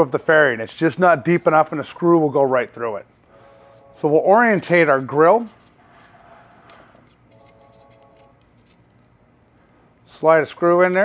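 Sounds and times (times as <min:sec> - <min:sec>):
faint background music chord: 0:03.4 - 0:05.0.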